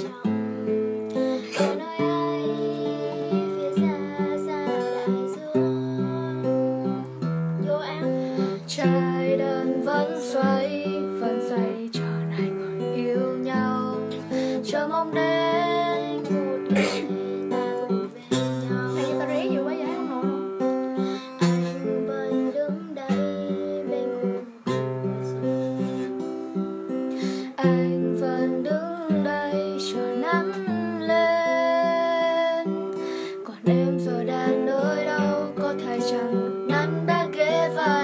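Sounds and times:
acoustic guitar strumming: 0.0s - 38.0s
girl singing: 0.0s - 38.0s.

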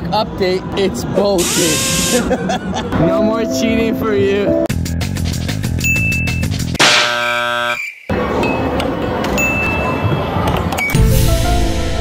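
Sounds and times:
buzzer-like chord: 6.8s - 7.9s.

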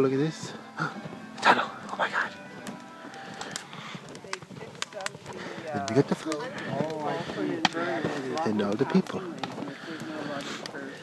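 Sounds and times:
faint voices: 0.0s - 11.0s
sharp snaps or crunches: 1.4s - 11.0s.

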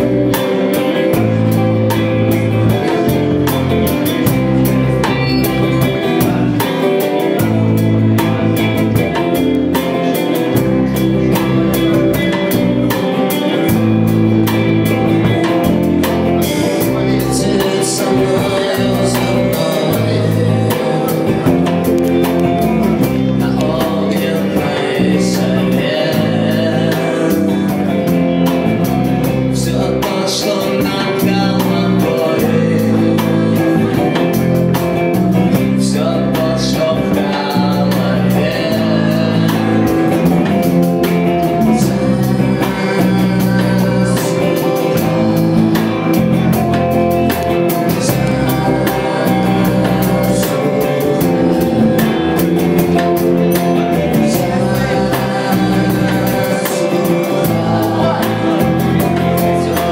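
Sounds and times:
bass guitar: 0.0s - 59.9s
drum-kit beat: 0.0s - 59.9s
electric guitar: 0.0s - 59.9s
man singing: 0.0s - 59.9s.

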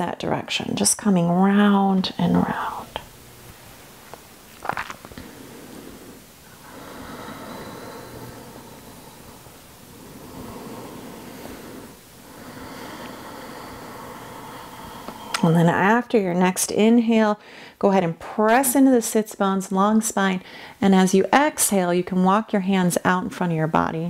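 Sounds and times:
deep breathing close up: 5.1s - 15.6s, 17.4s - 17.8s, 20.4s - 20.8s
sharp breath intake: 5.2s - 15.4s.

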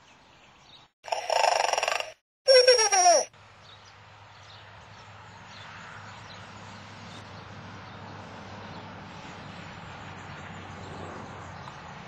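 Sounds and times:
robot voice buzzing growl: 1.1s - 2.2s
short falling vocal cry: 1.1s - 3.3s.

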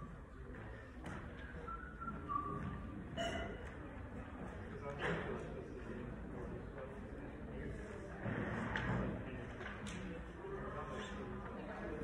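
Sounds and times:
low hall noise: 0.0s - 12.0s
person whistling: 1.4s - 2.8s.

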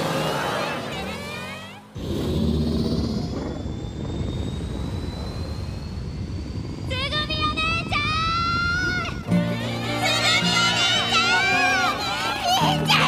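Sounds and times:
vehicle engine rumbling: 0.0s - 13.0s
whine rising in pitch: 2.0s - 12.5s.

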